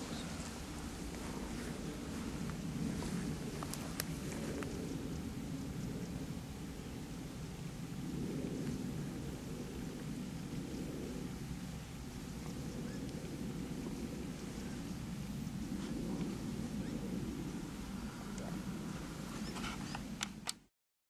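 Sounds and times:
wind buffeting microphone: 0:00.0 - 0:20.5.

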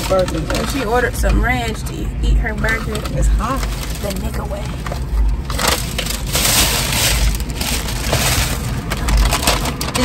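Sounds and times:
paper bag rustling and crinkling: 0:00.0 - 0:01.8, 0:02.7 - 0:10.0.

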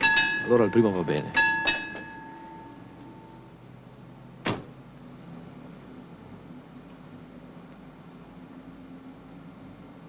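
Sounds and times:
ringing bell tone: 0:00.0 - 0:03.6
car door slam: 0:04.4 - 0:04.8.

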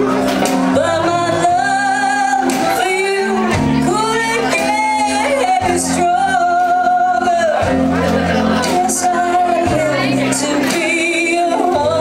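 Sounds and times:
bass guitar: 0:00.0 - 0:12.0
drums: 0:00.0 - 0:12.0
electric guitar: 0:00.0 - 0:12.0
woman singing with vibrato: 0:00.0 - 0:12.0.

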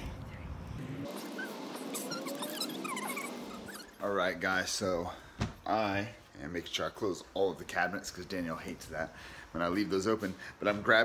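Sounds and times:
animal squeaks and chirps: 0:01.1 - 0:04.0.

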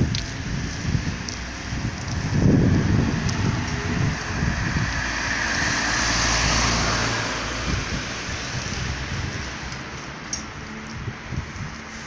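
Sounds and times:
road noise rumble: 0:00.0 - 0:12.0
wind on microphone: 0:00.0 - 0:12.0.

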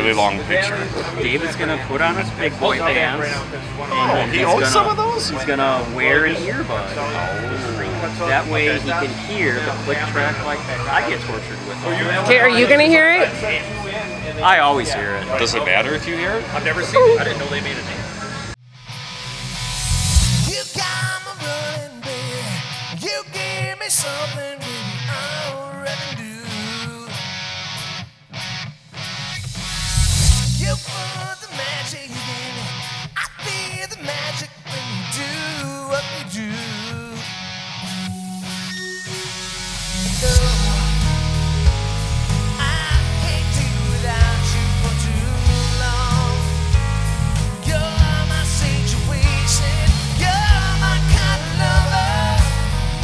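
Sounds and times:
person singing: 0:17.0 - 0:17.3, 0:20.5 - 0:27.3, 0:30.6 - 0:37.4, 0:39.8 - 0:46.8, 0:47.4 - 0:53.0
rock band playing live: 0:17.0 - 0:17.4, 0:18.9 - 0:53.0.

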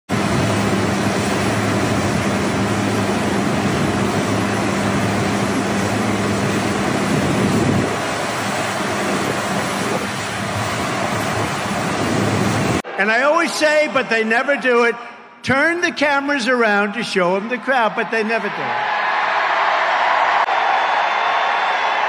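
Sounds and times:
jet aircraft roar: 0:00.1 - 0:14.3.

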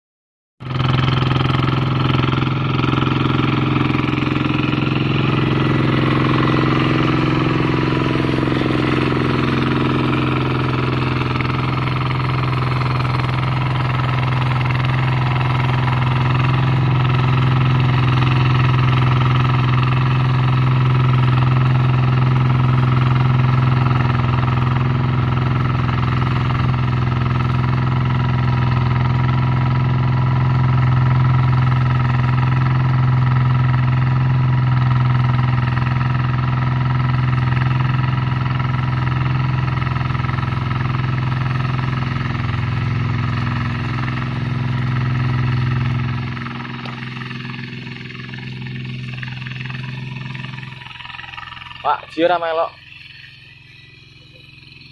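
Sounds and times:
diesel engine running under load: 0:00.6 - 0:54.9.

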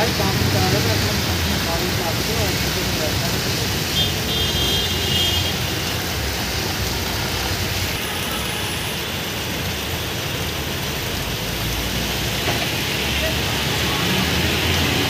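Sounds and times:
heavy rain: 0:00.0 - 0:15.0
traffic on wet street: 0:00.0 - 0:15.0.

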